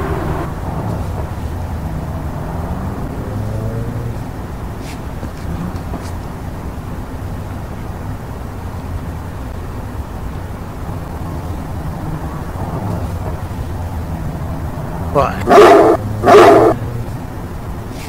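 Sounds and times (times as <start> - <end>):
dog barking: 15.4 - 16.8.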